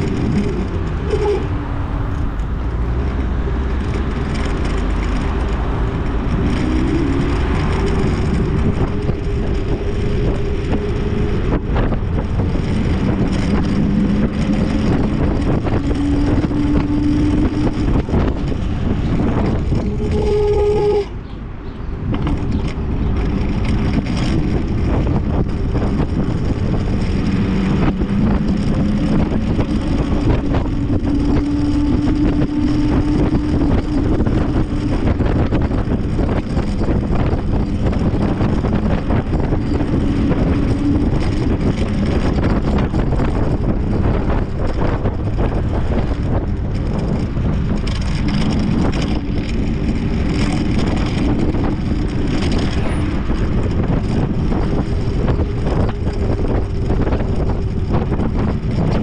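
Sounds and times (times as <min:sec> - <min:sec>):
road rumble: 0:00.0 - 0:59.0
wind buffeting microphone: 0:00.0 - 0:59.0.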